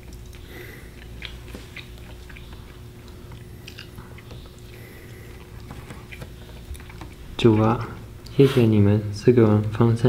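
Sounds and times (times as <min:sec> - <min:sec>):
chewing clicks: 0:00.0 - 0:08.4
low room hum: 0:00.0 - 0:10.0.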